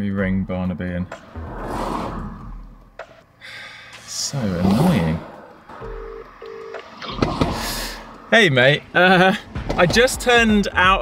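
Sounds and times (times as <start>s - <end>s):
car passing with tyre noise: 1.0s - 10.7s.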